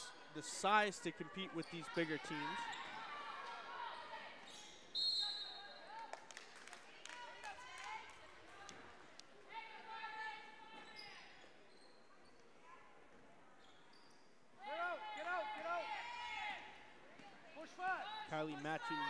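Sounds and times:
voices in a hall: 0.0s - 19.0s
sneakers squeaking: 0.4s - 3.1s, 10.7s - 12.5s, 13.5s - 14.4s.

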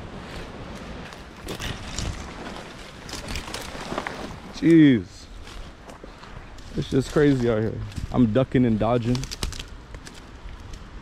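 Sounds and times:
branches and scrub rustling: 0.0s - 11.0s
sharp crackles: 0.7s - 4.8s, 5.4s - 11.0s
wind buffeting microphone: 5.3s - 11.0s.

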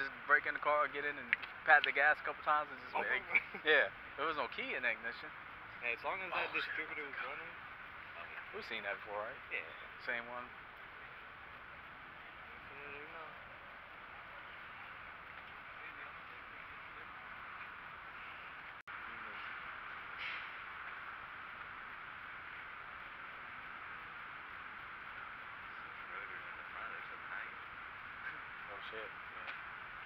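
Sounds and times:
distant indistinct voices: 0.0s - 30.0s.

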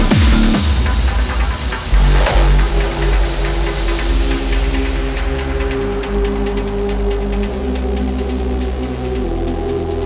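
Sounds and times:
deep held bass: 1.9s - 5.2s.

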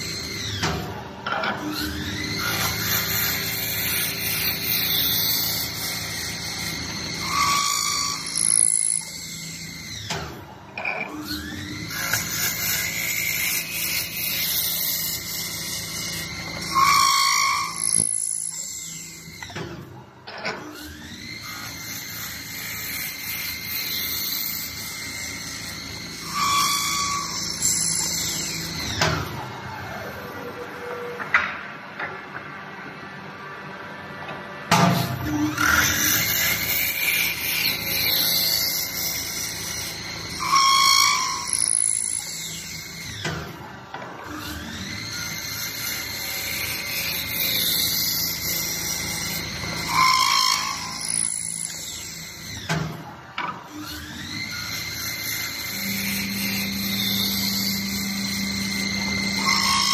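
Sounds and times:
lathe spindle whine: 0.0s - 59.9s.

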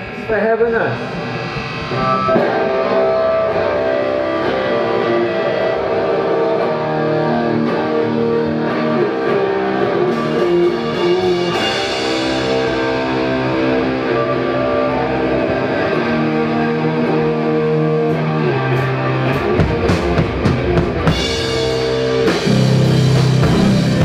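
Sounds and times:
distorted electric guitar chords: 0.0s - 24.0s
drum crash: 1.0s - 3.9s, 19.5s - 24.0s.

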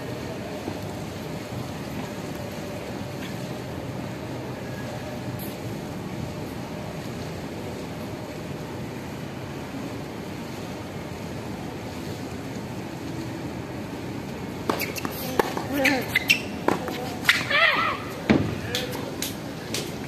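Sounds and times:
steady outdoor hum: 0.0s - 20.0s
tennis ball hits and bounces: 14.6s - 17.5s.

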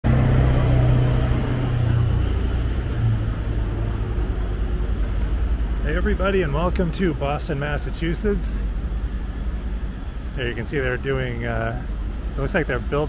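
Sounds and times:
city traffic noise: 0.0s - 13.0s
vehicle engine humming: 0.0s - 13.0s.

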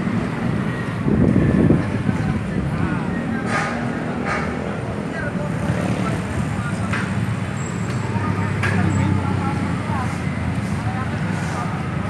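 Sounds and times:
motorbikes and cars passing: 0.0s - 12.0s
street traffic: 0.0s - 12.0s
indistinct voices: 1.3s - 12.0s.

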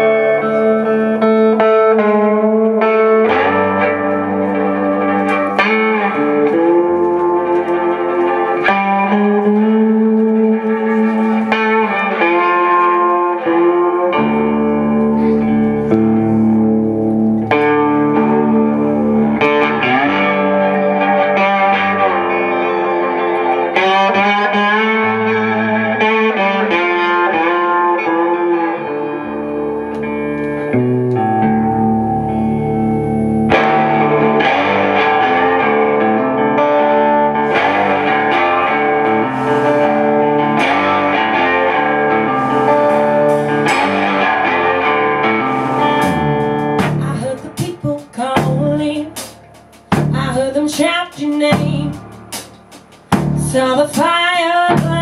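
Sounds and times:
electric guitar lead: 0.0s - 55.0s
live blues band playing: 0.0s - 55.0s.

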